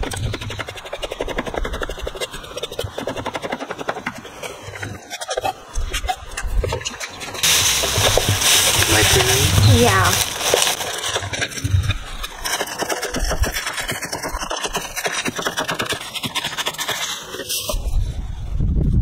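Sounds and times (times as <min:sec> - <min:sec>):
rustling: 0:06.8 - 0:18.0.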